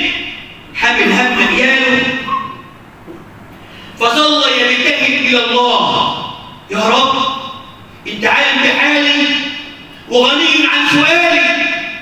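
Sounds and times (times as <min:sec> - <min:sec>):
man preaching through a microphone: 0:00.0 - 0:02.7, 0:04.0 - 0:12.0.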